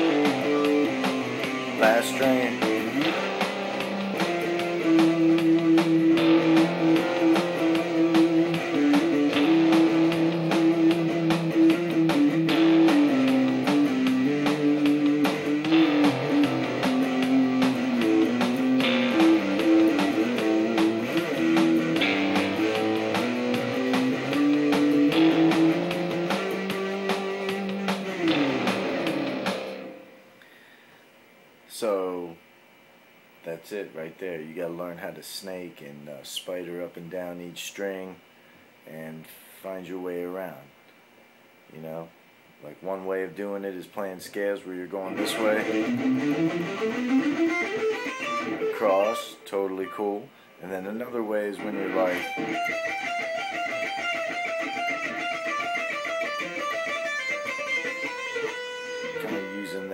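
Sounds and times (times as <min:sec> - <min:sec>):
backing track with drums: 0:00.0 - 0:30.0, 0:45.2 - 0:49.3
electric guitar melody: 0:00.0 - 0:30.5, 0:45.0 - 0:50.2, 0:51.5 - 0:59.9.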